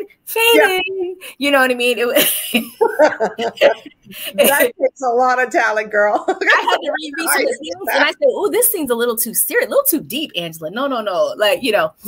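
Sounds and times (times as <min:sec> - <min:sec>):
woman laughing: 0:02.1 - 0:04.8, 0:06.2 - 0:08.1.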